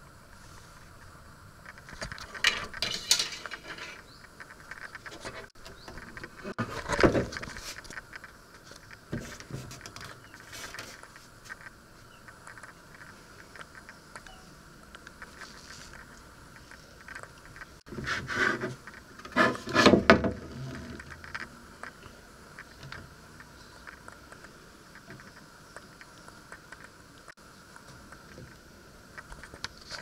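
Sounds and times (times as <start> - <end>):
rustling: 0.3 - 30.0
knocks and scrapes on wood: 17.9 - 21.1.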